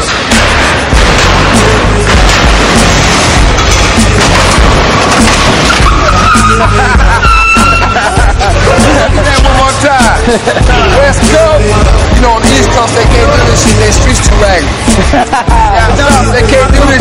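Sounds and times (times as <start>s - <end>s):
music with heavy beat: 0.0s - 17.0s.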